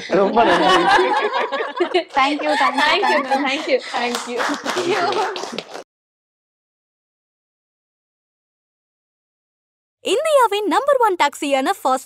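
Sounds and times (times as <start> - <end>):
people clapping: 0.8 - 5.9.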